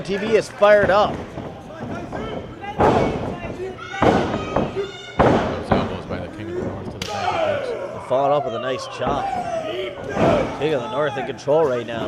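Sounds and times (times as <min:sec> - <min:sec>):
men shouting: 0:07.0 - 0:11.4.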